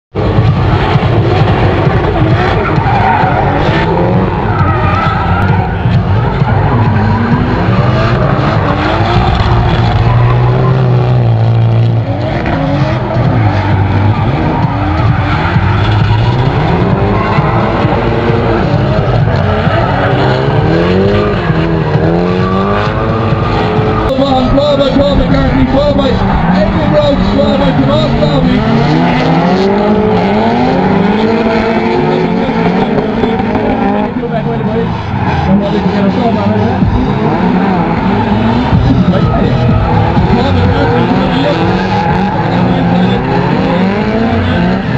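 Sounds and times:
car engines revving: 0.1s - 44.9s
tyres squealing: 2.0s - 44.9s.

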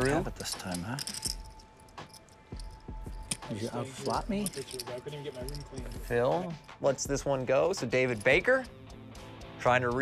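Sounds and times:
clay poker chips clicking: 0.6s - 6.7s.

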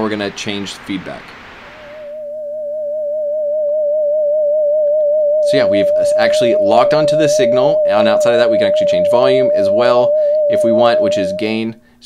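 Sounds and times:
warbling radio whistle tone: 1.9s - 11.6s.

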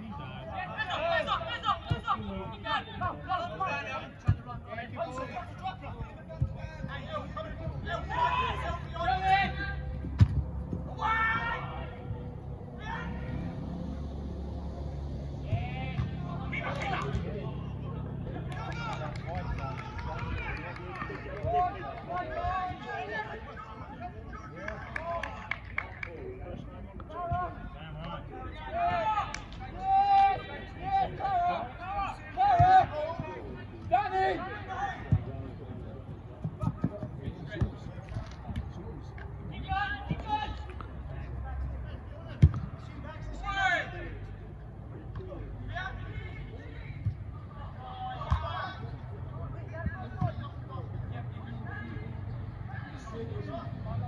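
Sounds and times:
footballers shouting: 0.0s - 44.4s, 45.3s - 54.0s
football being kicked: 10.1s - 10.7s, 42.4s - 42.7s.

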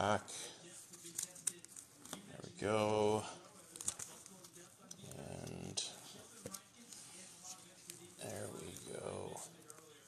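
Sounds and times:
plastic sleeve crinkling: 0.6s - 2.4s, 3.4s - 10.0s.

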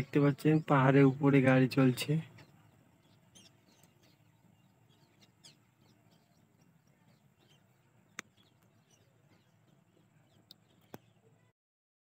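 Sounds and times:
low steady background hum: 0.0s - 11.5s.

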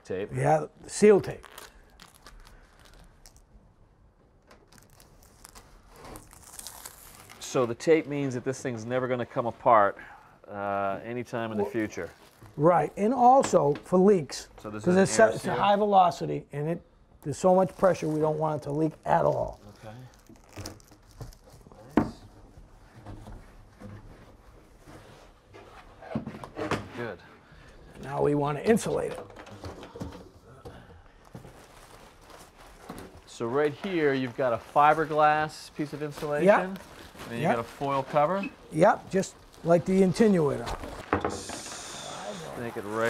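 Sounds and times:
tape crinkling and tearing: 1.0s - 3.6s, 4.3s - 7.9s, 11.7s - 12.6s, 17.5s - 22.0s, 31.2s - 43.0s
soft rustles: 31.2s - 41.1s.

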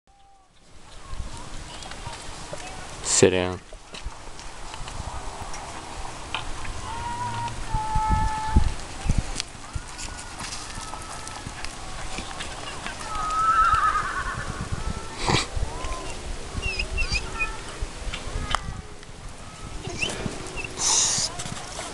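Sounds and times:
horse hoofbeats on dirt: 8.3s - 15.1s, 20.0s - 21.9s.

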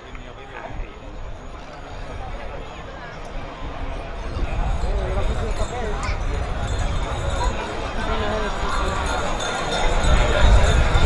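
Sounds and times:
murmur of onlookers: 0.0s - 11.0s.

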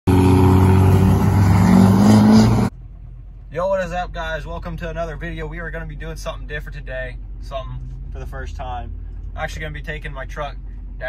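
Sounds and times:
diesel pickup engine revving hard: 0.1s - 2.7s.

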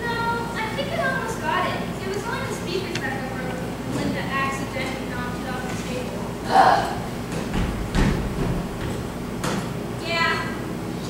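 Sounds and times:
footsteps on stage floor: 7.2s - 9.7s.

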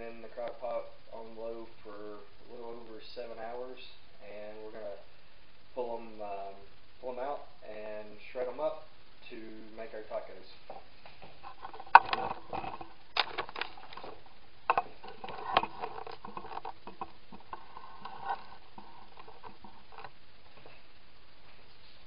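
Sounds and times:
scraping and rustling: 10.8s - 22.0s.

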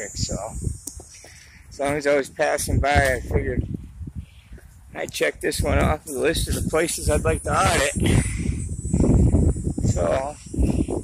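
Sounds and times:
wind buffeting microphone: 0.0s - 11.0s
microphone handling noise: 2.6s - 11.0s.

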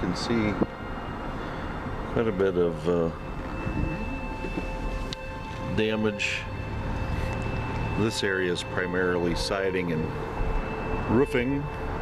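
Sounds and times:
car engine and tyres rumble: 0.0s - 12.0s
faint high tone: 2.2s - 12.0s.

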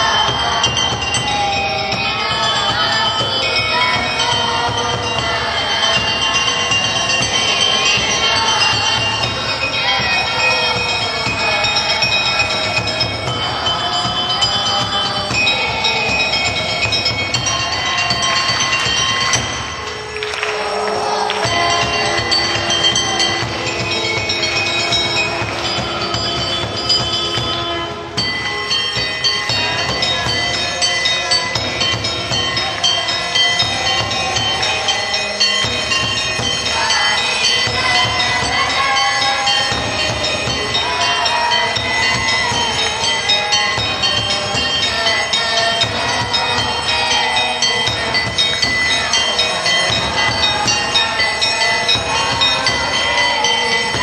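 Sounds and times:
music of long held notes: 0.0s - 54.0s.

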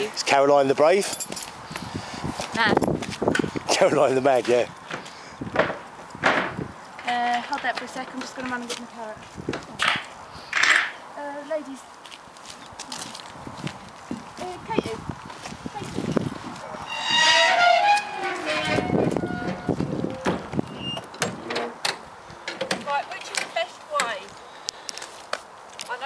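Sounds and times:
ramp and door knocking and clattering: 5.6s - 6.6s, 17.0s - 22.0s.

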